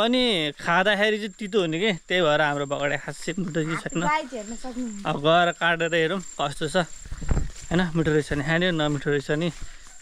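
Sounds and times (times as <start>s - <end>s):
man talking: 0.0s - 4.1s, 5.0s - 6.9s, 7.7s - 9.6s
insect trill: 0.0s - 10.0s
low rumble of wind: 5.8s - 8.8s.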